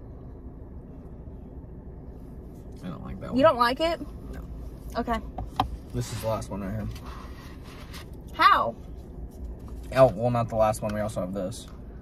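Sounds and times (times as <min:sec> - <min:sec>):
car idling rumble: 0:00.0 - 0:12.0.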